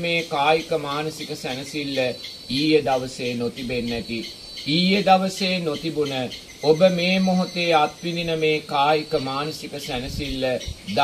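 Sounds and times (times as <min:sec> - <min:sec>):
insects chirring: 0:00.0 - 0:11.0
man preaching: 0:00.0 - 0:11.0.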